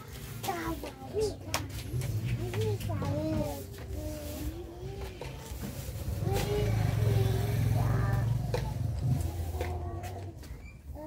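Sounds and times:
motor engine running: 5.0 - 10.5.

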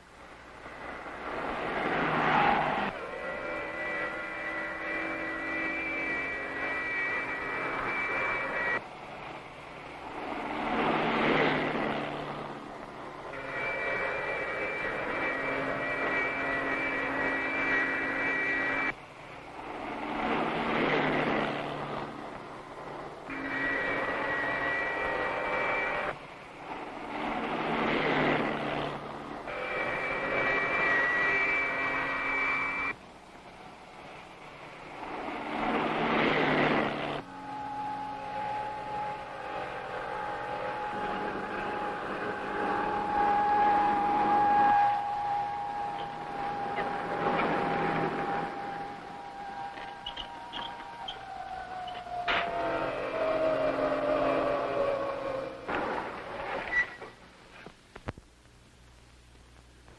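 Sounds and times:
high whining jet drone: 0.0 - 57.3.

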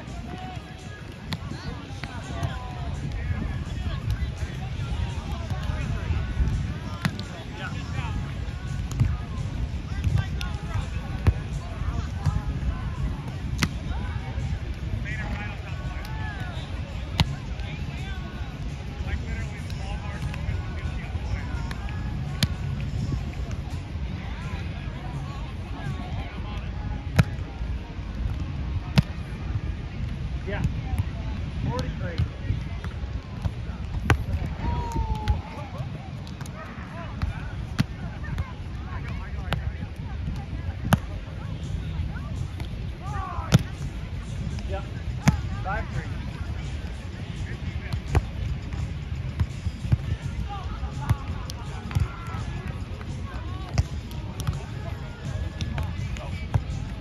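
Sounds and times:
wind rumbling on microphone: 0.0 - 50.9
faint distant voices: 0.0 - 57.0.

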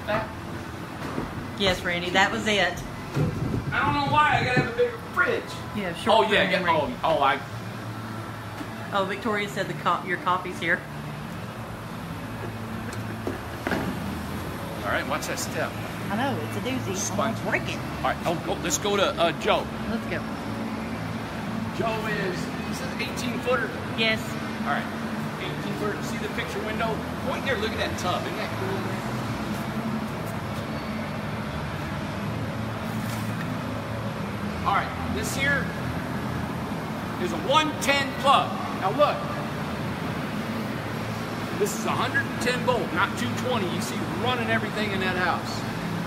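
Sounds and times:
low mechanical hum: 0.0 - 46.0.

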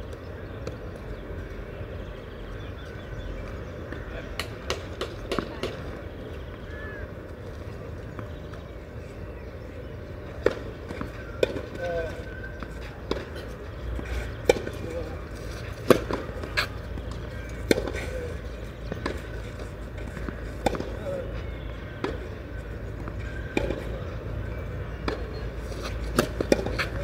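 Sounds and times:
faint voices: 0.0 - 27.0.

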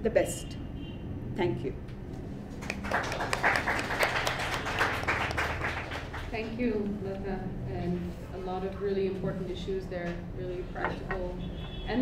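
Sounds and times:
audience applauding: 2.5 - 6.4.

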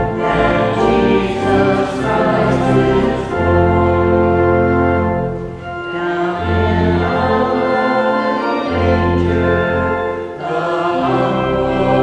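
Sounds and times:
choir singing a hymn: 0.0 - 12.0
instrumental accompaniment: 0.0 - 12.0.

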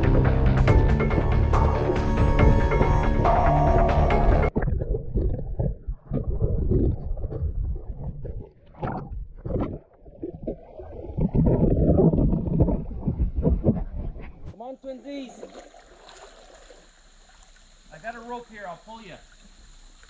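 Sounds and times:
background music: 0.0 - 4.5
muffled river water sloshing: 0.0 - 18.0.

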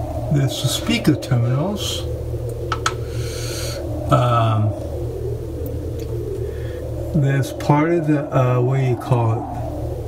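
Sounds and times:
low hum: 0.0 - 10.0
man murmuring: 4.1 - 4.8.

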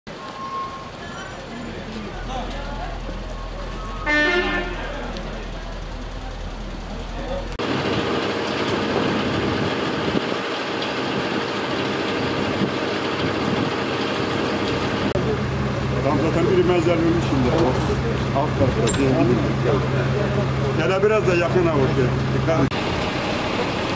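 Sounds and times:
outdoor background noise: 0.1 - 23.9
steady vehicle noise: 0.1 - 23.9
vehicle horn toot: 3.6 - 5.2.

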